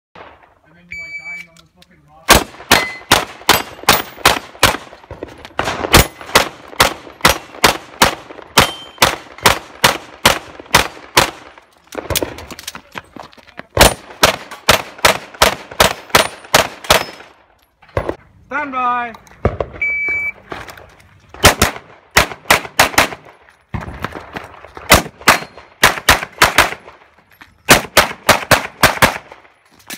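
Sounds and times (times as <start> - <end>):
shot timer beep: 0.9 - 1.5, 19.8 - 20.4
handgun firing rapid shots: 2.3 - 4.9, 5.6 - 11.5, 13.8 - 17.2, 21.4 - 23.2, 24.9 - 26.8, 27.7 - 29.4.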